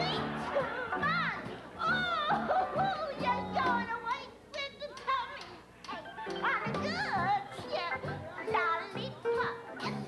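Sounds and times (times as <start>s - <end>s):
woman singing in high voice: 0.0s - 5.6s.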